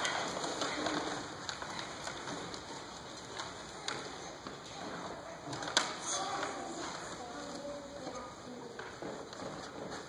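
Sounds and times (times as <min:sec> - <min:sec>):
people rustling and shuffling: 0:00.0 - 0:10.0.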